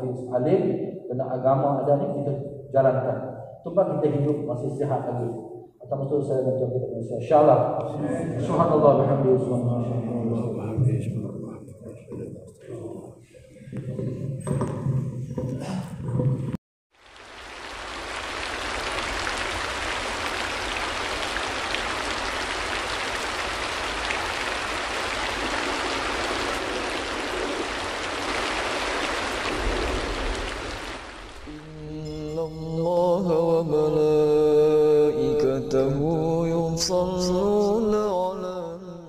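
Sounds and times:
rain falling: 16.9s - 31.8s
person chanting slow melody: 31.5s - 39.0s.

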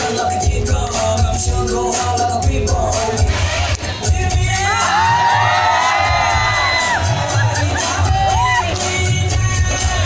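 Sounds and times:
dance music with bass beat: 0.0s - 10.0s
audience cheering and shouting: 4.1s - 9.8s.

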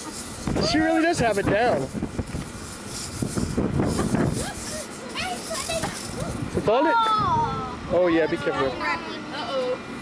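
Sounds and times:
wind rumble: 0.3s - 8.0s.

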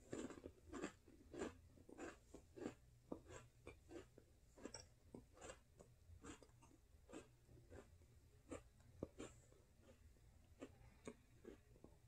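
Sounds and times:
soft cookie crunching: 0.0s - 12.0s.

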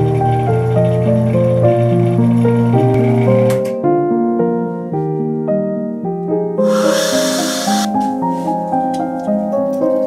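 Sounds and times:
air hissing into chamber: 6.6s - 7.9s.

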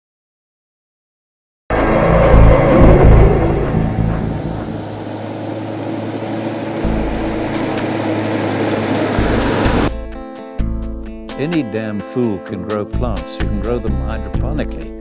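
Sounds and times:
vehicle engine rumble: 1.7s - 11.4s.

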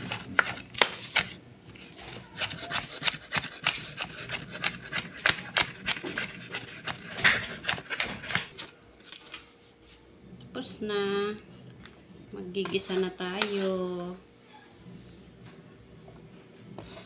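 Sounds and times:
knife chopping on wooden board: 2.4s - 8.5s.

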